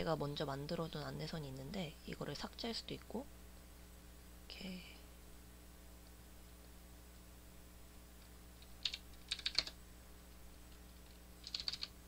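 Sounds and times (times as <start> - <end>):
keyboard typing: 8.6 - 9.8, 10.7 - 12.0.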